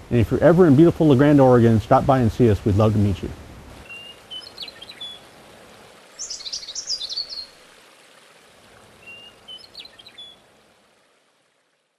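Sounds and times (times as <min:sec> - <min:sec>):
open-air ambience hiss: 0:00.0 - 0:11.9
songbirds singing: 0:03.8 - 0:07.6, 0:08.8 - 0:10.5.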